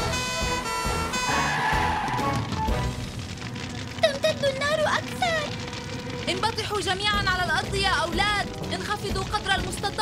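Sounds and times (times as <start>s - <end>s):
faint background music: 4.0s - 10.0s.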